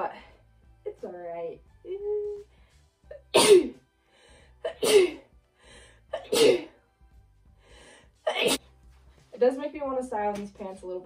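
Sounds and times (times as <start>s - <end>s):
woman coughing hard: 3.3s - 3.8s, 4.6s - 5.3s, 6.2s - 6.7s, 8.3s - 8.6s.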